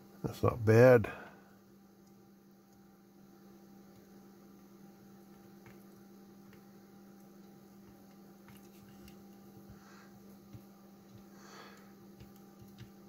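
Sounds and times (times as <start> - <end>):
faint electrical mains hum: 0.0 - 13.0.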